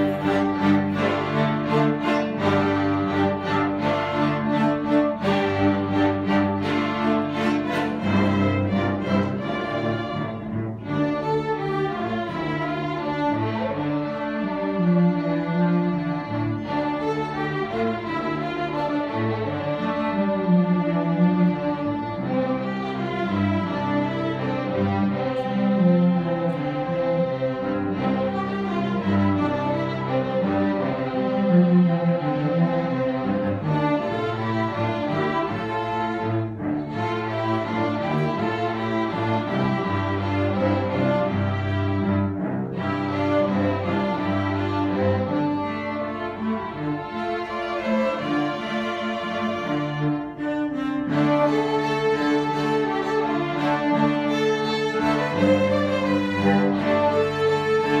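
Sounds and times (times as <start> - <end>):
string ensemble playing: 0.0 - 58.0.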